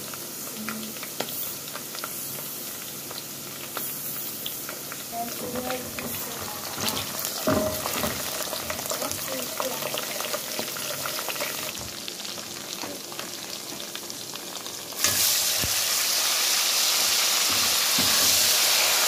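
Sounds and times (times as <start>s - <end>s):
onions sizzling in hot oil: 0.0s - 19.0s.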